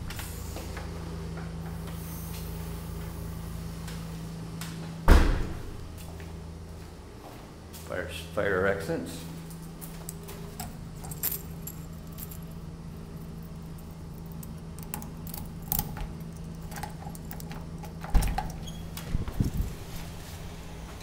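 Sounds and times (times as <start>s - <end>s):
steady low hum: 0.0s - 21.0s
door opening thump: 5.0s - 5.8s, 18.0s - 19.4s
keys jangling in door lock: 10.0s - 18.8s.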